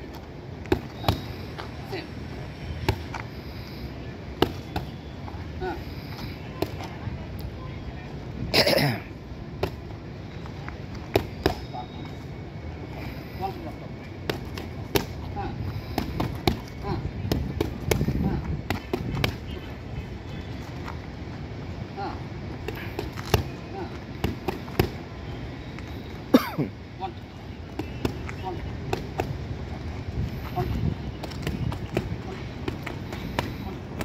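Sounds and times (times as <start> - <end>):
wind noise on microphone: 17.0 - 19.6, 29.2 - 32.2.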